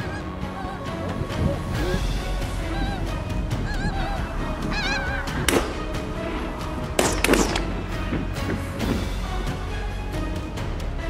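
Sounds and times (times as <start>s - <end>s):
geese honking: 0.0s - 9.4s
sharp crack: 5.4s - 6.1s, 7.0s - 9.0s.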